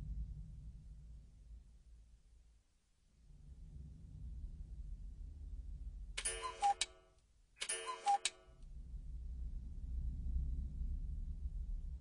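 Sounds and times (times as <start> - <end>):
sharp click: 6.2 - 7.0, 7.6 - 8.4.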